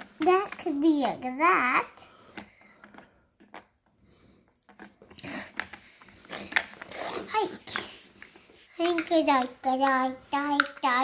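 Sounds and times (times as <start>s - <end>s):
plastic toy pieces clicking on tile: 8.8s - 9.9s, 10.6s - 10.9s.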